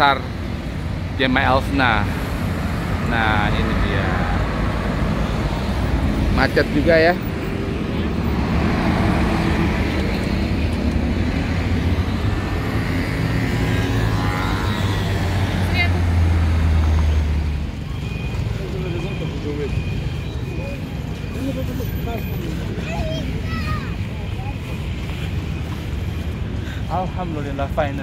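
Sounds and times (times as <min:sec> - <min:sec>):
slow city traffic: 0:00.0 - 0:28.0.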